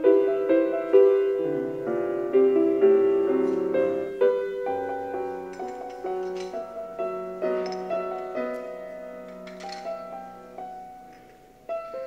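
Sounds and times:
slow piano music: 0.0 - 12.0.

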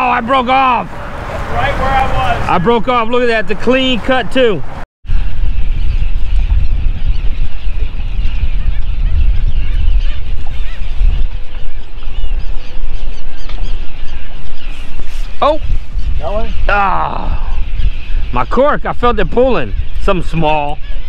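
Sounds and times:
wind rumbling on microphone: 0.0 - 21.0.

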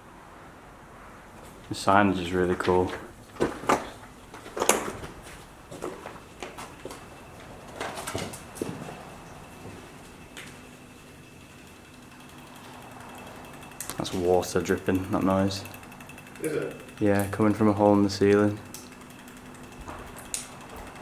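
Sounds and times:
faint electrical buzz: 0.0 - 21.0
debris knocks and scuffs underfoot: 2.5 - 9.0.

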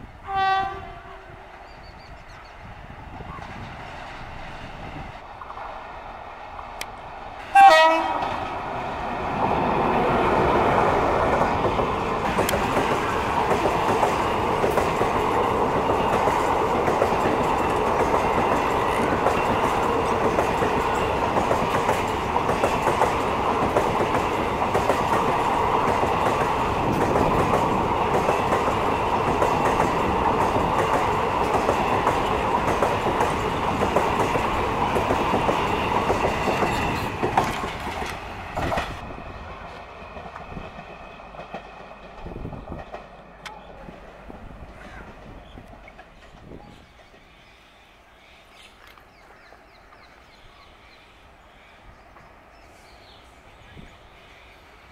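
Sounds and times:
train rolling rumble: 0.0 - 54.9
train horn: 0.2 - 1.7, 7.5 - 8.5
wheels clicking over rail joints: 9.4 - 39.0, 39.6 - 47.3.

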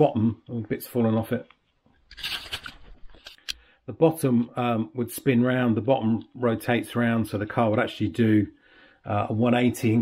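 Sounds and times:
plastic toy car rustle: 2.1 - 3.5.

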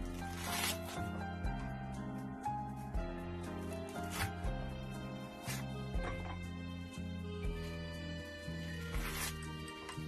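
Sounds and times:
fruit peel tearing: 0.0 - 1.2, 3.8 - 4.4, 8.8 - 9.7
background music with bass: 0.0 - 10.0.

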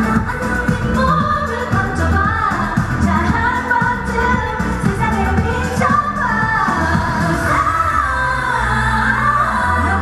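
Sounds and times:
backing track with bass line: 0.0 - 10.0
woman singing into microphone: 0.0 - 10.0.

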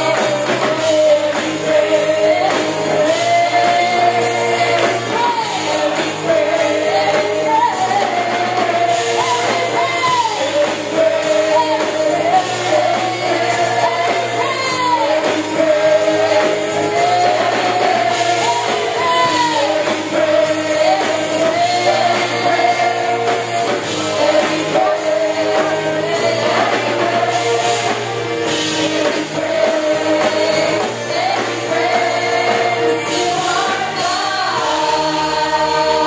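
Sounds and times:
band with steady beat: 0.0 - 36.0.

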